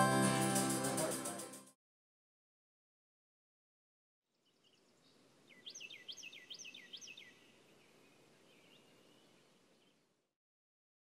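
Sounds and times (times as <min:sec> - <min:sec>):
bird chirping: 0:04.3 - 0:10.1
low steady background noise: 0:07.3 - 0:10.3.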